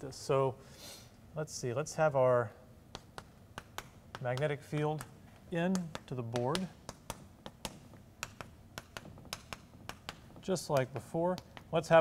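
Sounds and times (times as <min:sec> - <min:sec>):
chalk tapping on blackboard: 0:02.9 - 0:12.0.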